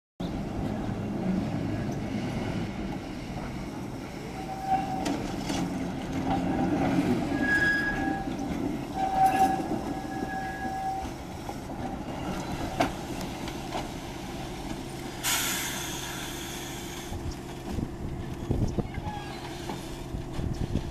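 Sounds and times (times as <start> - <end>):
streetcar rolling on rails: 0.2 - 20.9
wheel squeals: 4.2 - 11.3
hiss: 15.2 - 17.3.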